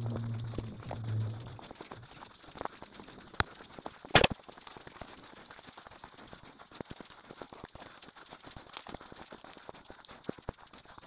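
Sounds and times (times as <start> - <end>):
sped-up footsteps on dirt path: 0.0 - 11.0.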